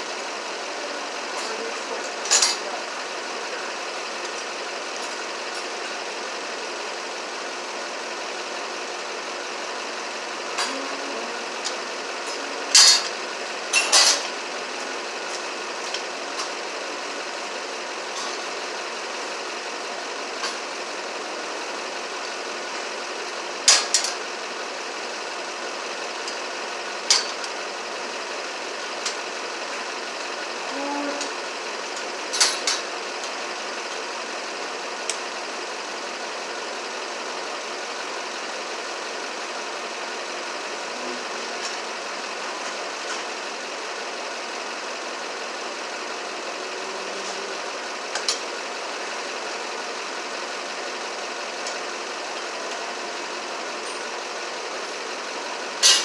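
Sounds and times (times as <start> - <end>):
mechanical running noise: 0.0 - 56.0.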